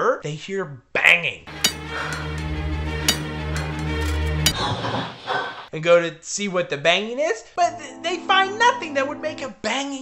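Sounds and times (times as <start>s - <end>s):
low droning chord: 1.5s - 4.6s.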